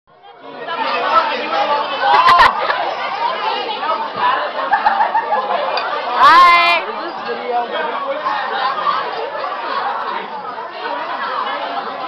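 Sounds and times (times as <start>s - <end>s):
many people talking: 0.1s - 12.0s.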